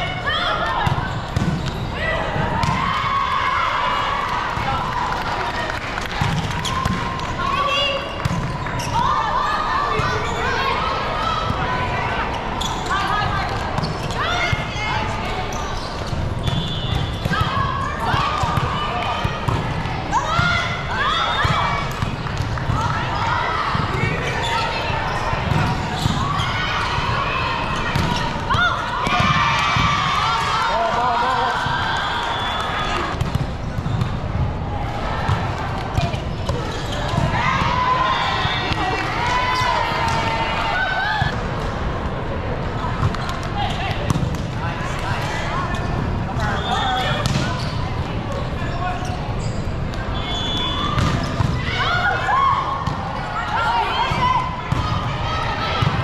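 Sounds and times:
shoes squeaking on court: 0.8s - 2.0s, 12.6s - 13.1s, 15.4s - 17.3s, 36.0s - 37.2s, 49.0s - 51.5s
players shouting: 16.6s - 33.2s, 34.5s - 41.4s, 50.0s - 56.0s.

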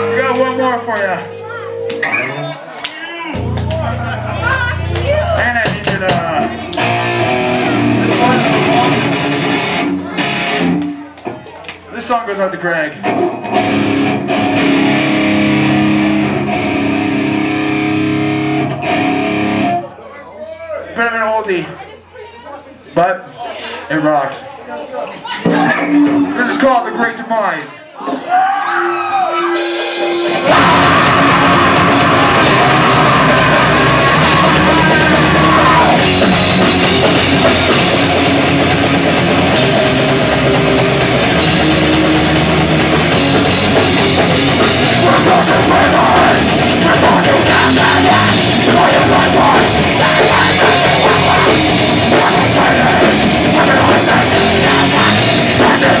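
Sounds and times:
distorted electric guitar chords: 0.0s - 2.5s, 3.4s - 11.0s, 13.0s - 19.9s, 25.5s - 26.9s, 29.4s - 56.0s
drum kit: 3.4s - 11.0s, 29.4s - 56.0s.

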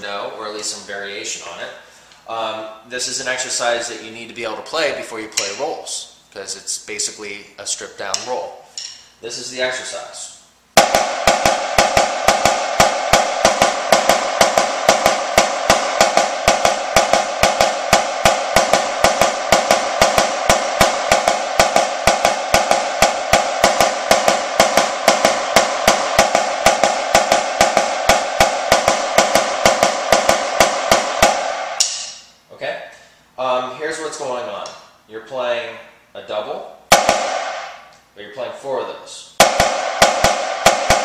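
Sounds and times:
snare drum double strokes: 10.8s - 32.3s, 36.9s - 37.9s, 39.4s - 41.0s.

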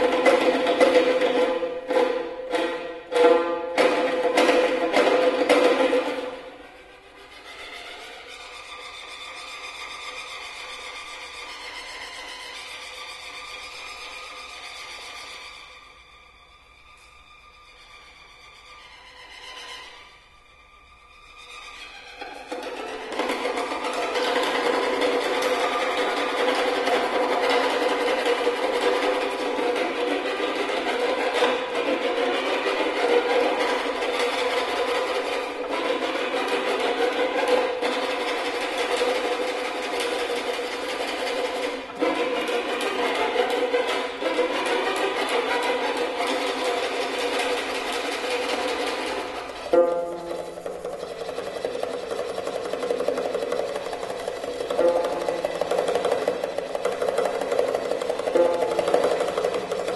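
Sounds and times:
buzzing amplified violin: 0.0s - 59.9s.

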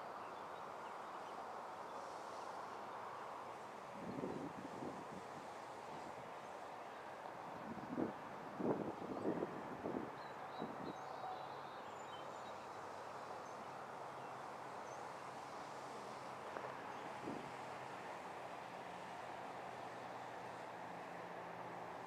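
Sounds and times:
outdoor hiss: 0.0s - 8.8s, 11.5s - 22.0s
wind buffeting microphone: 4.0s - 6.1s, 7.6s - 11.0s.

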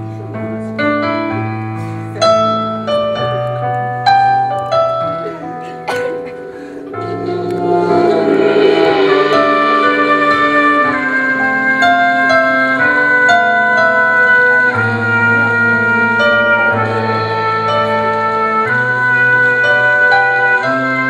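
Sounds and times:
horn section holding chords: 5.9s - 21.0s.

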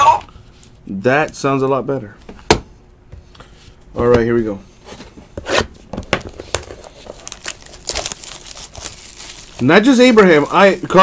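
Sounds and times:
plastic shrink-wrap crackling: 6.6s - 11.0s.

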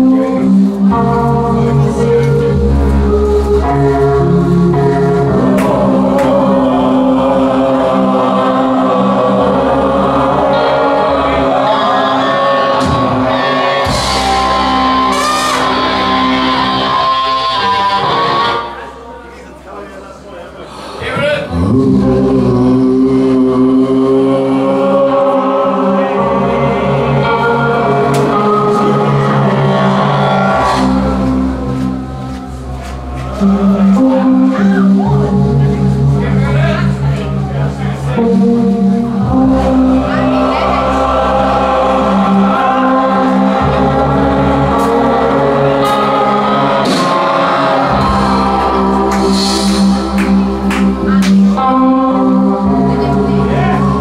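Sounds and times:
rock band with horns playing: 0.0s - 19.0s, 24.8s - 37.4s, 38.1s - 54.0s
deep bass: 0.0s - 54.0s
voices chanting a low drone: 0.0s - 54.0s.

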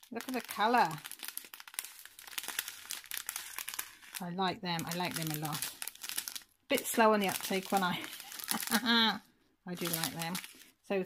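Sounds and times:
plastic bags crinkling: 0.0s - 10.8s.

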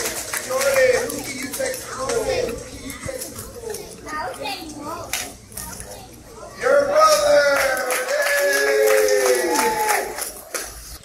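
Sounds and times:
children talking and calling out: 0.6s - 8.2s.

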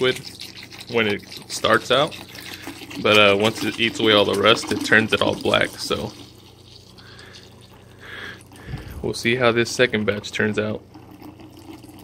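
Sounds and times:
liquid pouring into bucket: 0.0s - 9.3s, 9.9s - 12.0s.

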